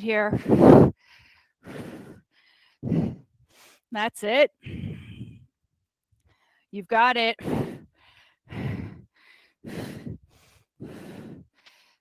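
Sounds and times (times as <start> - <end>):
woman inhaling faintly: 4.6 - 5.5.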